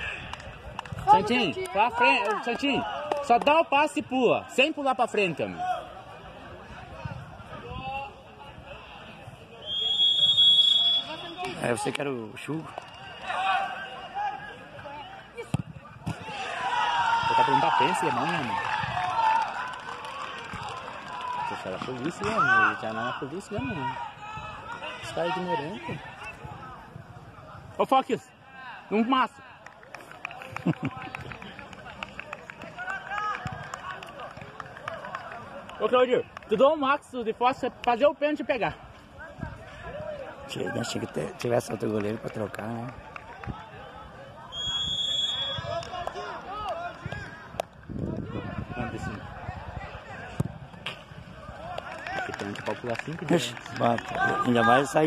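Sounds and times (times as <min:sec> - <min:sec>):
referee's whistle blown: 0:09.6 - 0:11.6, 0:44.5 - 0:45.8.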